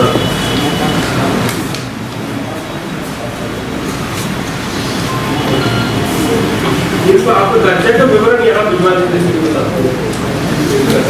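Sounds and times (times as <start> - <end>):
indistinct voices: 0.0 - 11.0
room noise rumble: 0.0 - 11.0.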